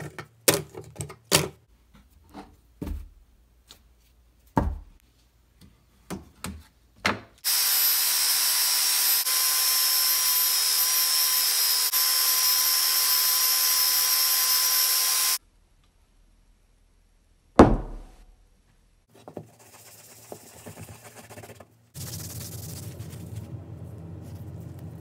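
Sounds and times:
electric sander running: 7.4s - 15.4s
sharp thump: 17.6s - 18.2s.

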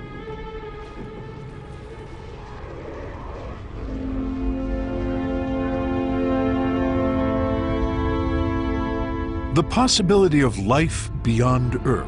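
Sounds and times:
soundtrack music: 3.8s - 12.0s
sustained chord: 3.9s - 12.0s.

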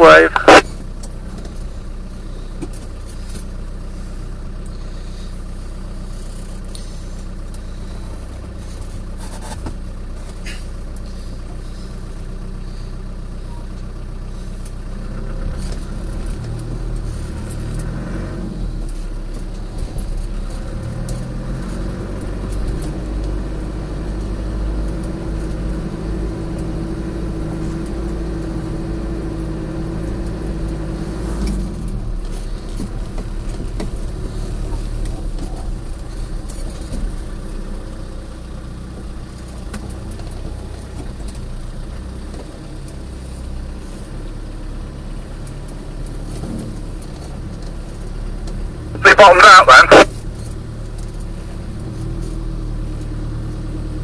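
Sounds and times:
vehicle engine at low speed: 0.0s - 54.0s.

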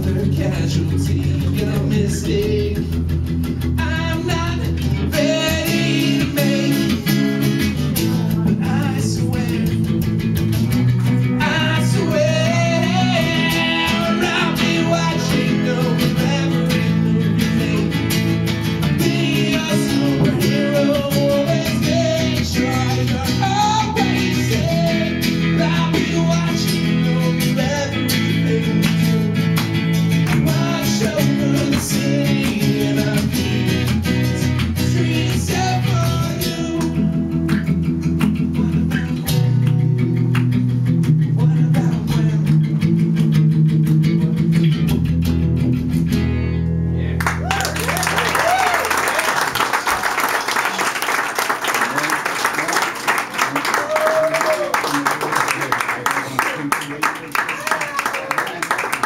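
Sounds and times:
acoustic guitars strumming: 0.0s - 47.2s.

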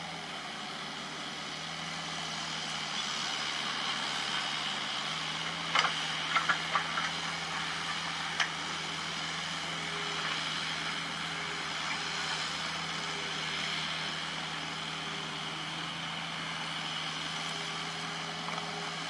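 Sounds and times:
excavator diesel engine running: 0.0s - 19.0s.

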